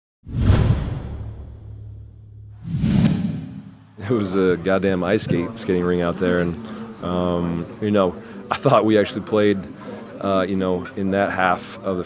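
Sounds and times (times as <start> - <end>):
whoosh sound effects: 0.3 - 4.0.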